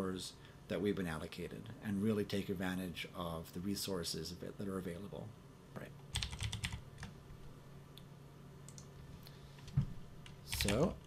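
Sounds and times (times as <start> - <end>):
faint steady hum: 0.0 - 11.0
computer keyboard typing: 6.1 - 7.1, 10.2 - 11.0.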